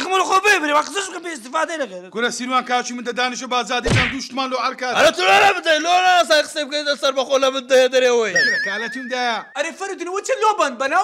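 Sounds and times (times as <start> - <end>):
person talking fast: 0.0 - 11.0
sudden thump: 3.8 - 4.2.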